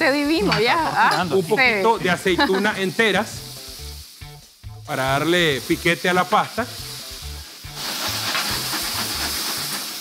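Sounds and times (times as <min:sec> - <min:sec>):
meat and olives sizzling in a pan: 0:00.0 - 0:10.0
gas flame flaring: 0:05.5 - 0:10.0.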